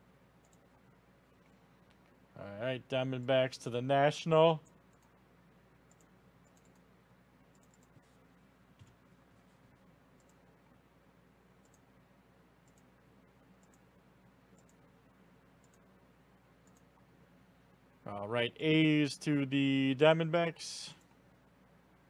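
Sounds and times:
low steady hum: 0.0s - 22.0s
mouse and keyboard clicks: 7.5s - 8.0s.

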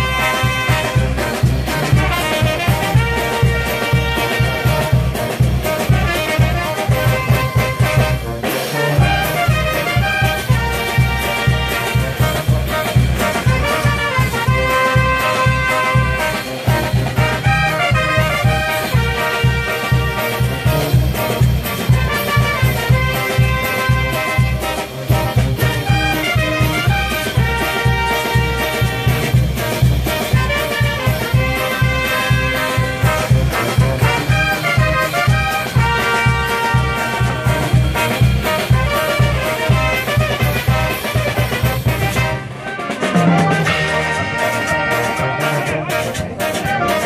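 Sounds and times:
bass and percussion beat: 0.0s - 47.0s
trumpets and trombones: 0.0s - 47.0s.

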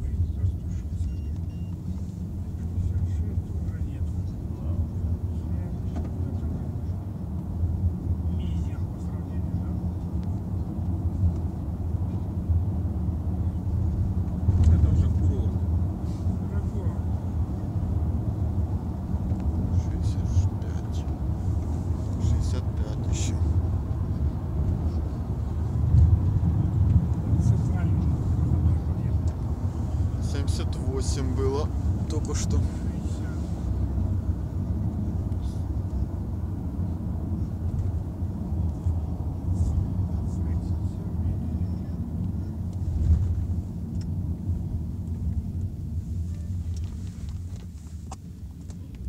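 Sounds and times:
engine and tyre rumble: 0.0s - 49.0s.

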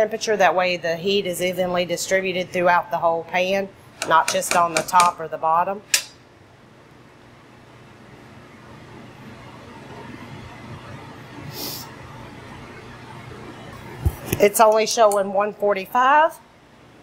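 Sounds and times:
kitchen exhaust hood hum: 0.0s - 17.0s.

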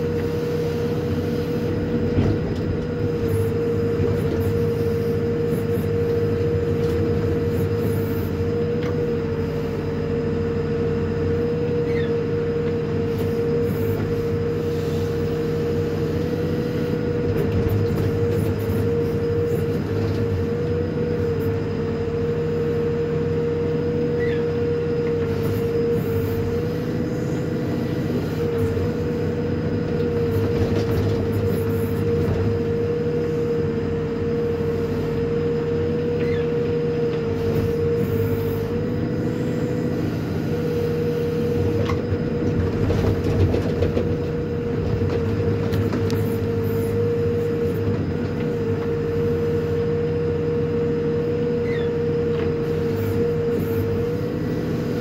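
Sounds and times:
backhoe digging and dumping soil: 0.0s - 55.0s
diesel engine under load: 0.0s - 55.0s.

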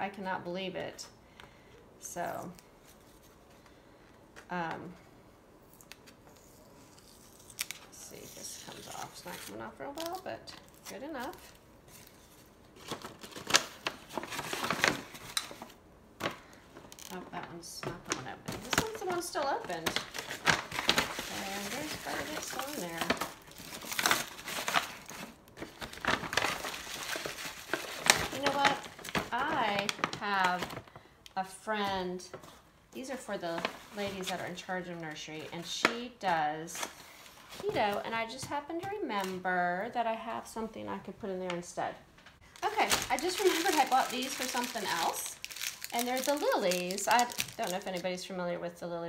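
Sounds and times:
paper bag crinkling: 6.4s - 31.0s, 42.5s - 48.0s.

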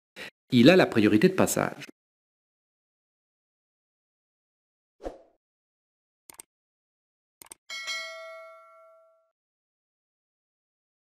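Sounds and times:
bright bell ding: 7.7s - 9.3s.

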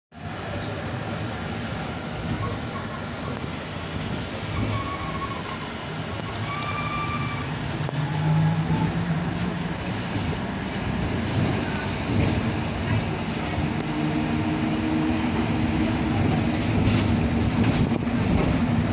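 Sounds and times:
trolleybus running noise: 0.1s - 18.9s.

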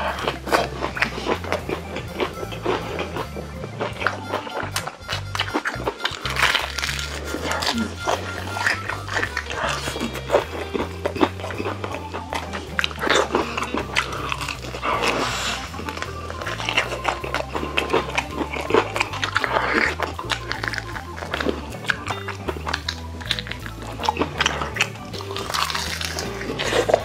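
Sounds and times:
background music: 0.0s - 27.0s
crunching and chewing fried chicken: 0.0s - 27.0s.

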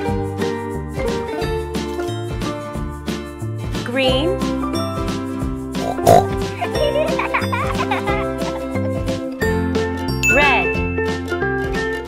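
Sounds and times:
tinkling children's music: 10.1s - 11.4s.

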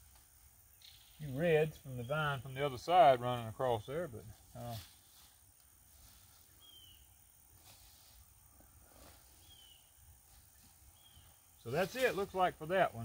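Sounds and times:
bird chirp: 0.6s - 2.9s, 6.4s - 7.5s, 9.2s - 11.8s.

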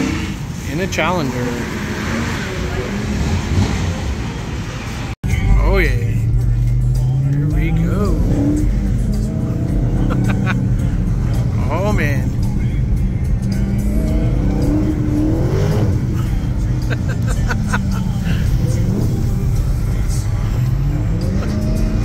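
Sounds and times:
car engine revving: 0.0s - 22.0s.

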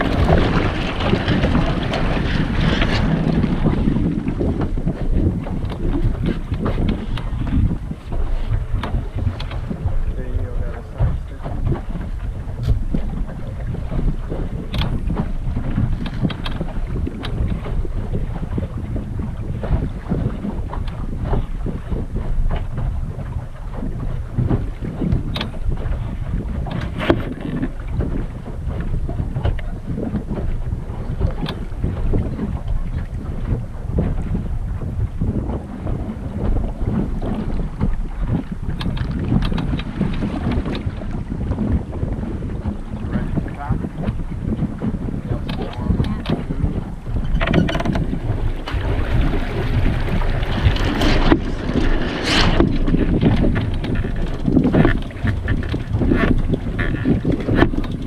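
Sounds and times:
water slapping against hull: 0.0s - 58.0s
wind buffeting microphone: 0.0s - 58.0s.

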